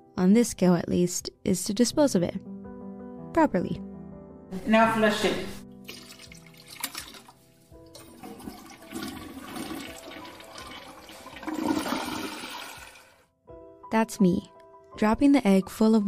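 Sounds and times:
toilet water rushing: 7.9 - 13.2.

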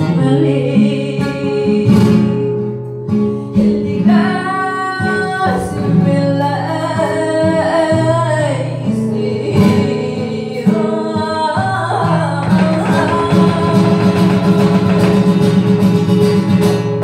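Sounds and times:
flamenco guitar: 0.0 - 17.0
woman singing flamenco: 0.0 - 17.0.

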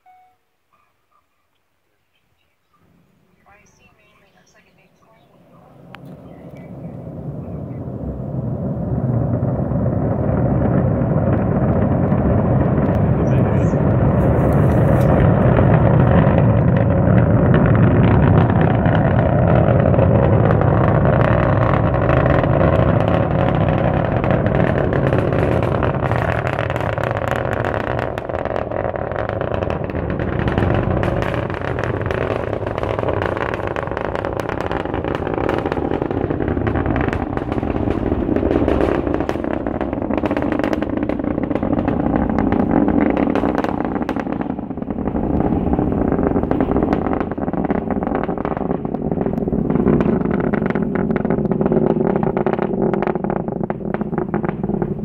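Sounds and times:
distant rocket engine rumble: 1.9 - 55.0.

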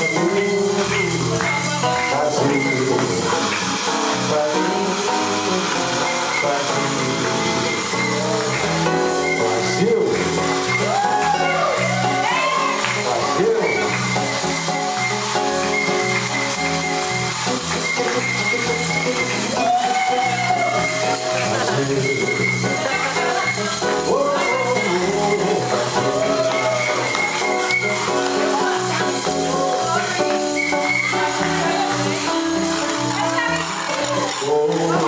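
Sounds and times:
man singing: 0.0 - 14.4, 18.3 - 35.0
bass rhythm: 0.0 - 35.0
guitar: 0.0 - 35.0
shaken percussion: 0.0 - 35.0.

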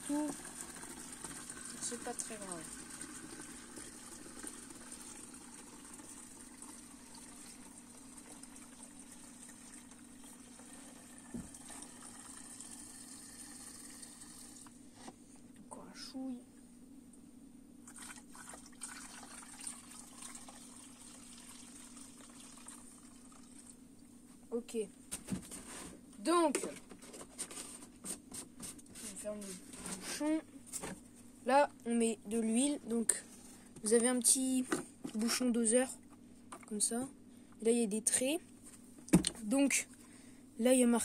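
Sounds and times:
petrol pouring into plastic bottle: 0.1 - 14.7, 17.9 - 23.8.

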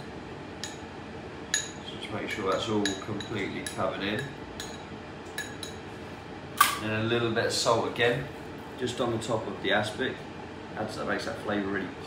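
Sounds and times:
spoon tapping a dish: 2.5 - 5.8.

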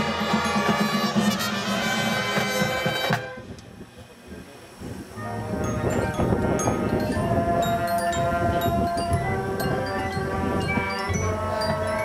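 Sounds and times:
marching band brass chord: 0.0 - 3.5.

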